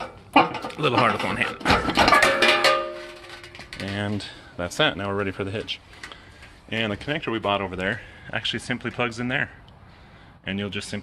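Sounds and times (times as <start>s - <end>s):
metal bar clanging: 0.0s - 3.9s.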